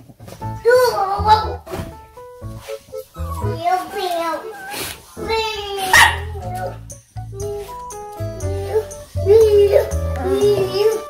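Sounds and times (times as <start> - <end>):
background music: 0.2 - 11.0
small dog barking: 5.7 - 6.8.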